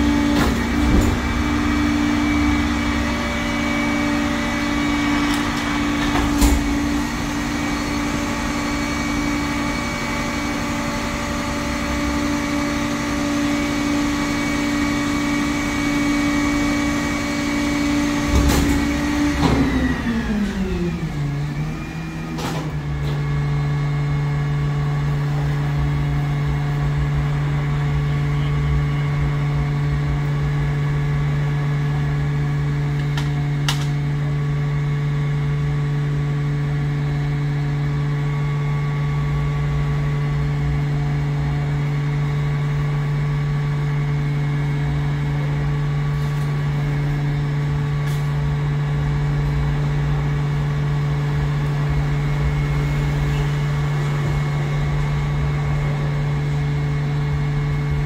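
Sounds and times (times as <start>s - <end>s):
truck engine running: 0.0s - 58.0s.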